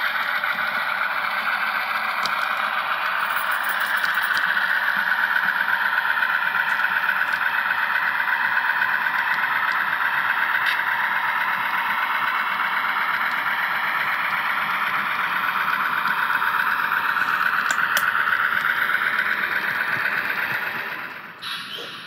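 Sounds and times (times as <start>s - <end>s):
model train wheels on rail: 0.0s - 22.0s.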